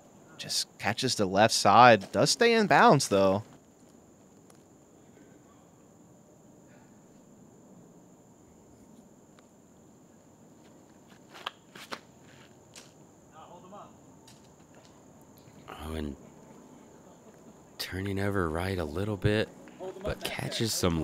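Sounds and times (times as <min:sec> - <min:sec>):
high insect drone: 0:00.0 - 0:21.0.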